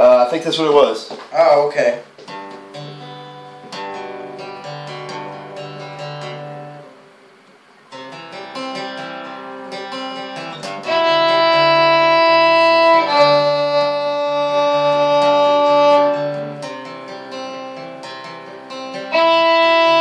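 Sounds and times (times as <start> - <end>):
acoustic guitar playing notes: 2.0 - 20.0
fiddle long bowed notes: 9.7 - 20.0.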